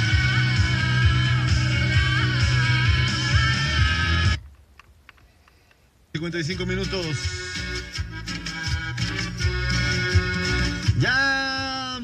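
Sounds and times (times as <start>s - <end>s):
guitar-led song on radio: 0.0s - 4.9s, 6.2s - 12.0s.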